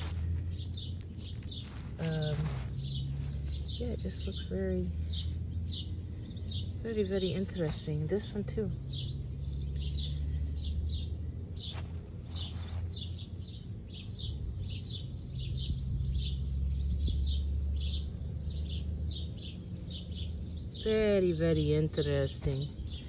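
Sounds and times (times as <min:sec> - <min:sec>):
low steady hum: 0:00.0 - 0:23.0
small bird chirping: 0:00.0 - 0:23.0.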